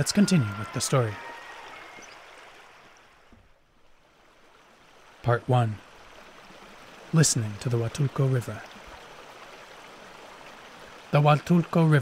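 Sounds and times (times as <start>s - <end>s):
river water burbling over stones: 0.0s - 12.0s.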